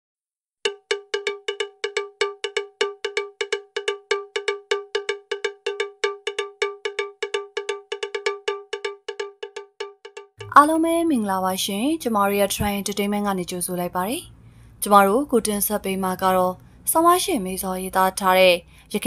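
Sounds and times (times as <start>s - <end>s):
cowbell-like metallic strikes: 0.7s - 10.6s.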